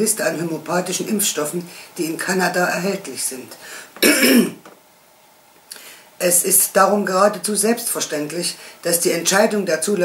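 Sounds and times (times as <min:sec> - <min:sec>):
woman clearing throat: 0:04.0 - 0:04.6.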